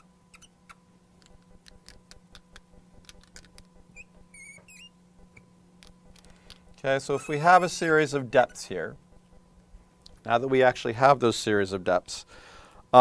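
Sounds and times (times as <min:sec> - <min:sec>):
marker tip squeaking on glass: 0:00.0 - 0:00.8, 0:03.3 - 0:05.0, 0:07.1 - 0:07.7, 0:08.4 - 0:08.8.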